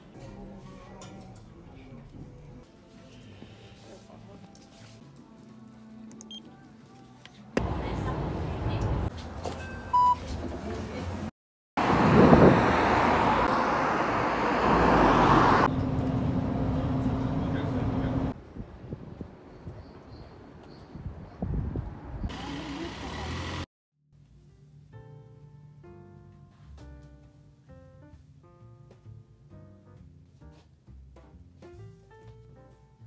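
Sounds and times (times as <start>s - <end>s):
card reader beep: 9.6s - 10.2s
vehicle interior rumble: 9.8s - 18.4s
barcode scanner beep: 9.9s - 10.2s
street rushing hiss: 22.2s - 23.6s.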